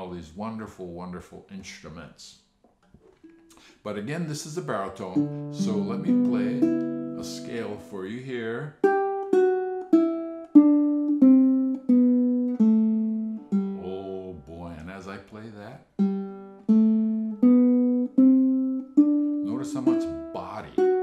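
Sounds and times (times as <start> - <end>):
ukulele plucking a scale: 4.6 - 15.0, 16.0 - 21.0.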